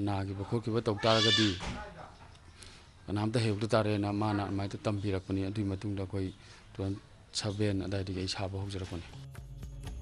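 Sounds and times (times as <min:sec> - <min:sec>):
man speaking: 0:00.0 - 0:02.2, 0:03.0 - 0:09.2.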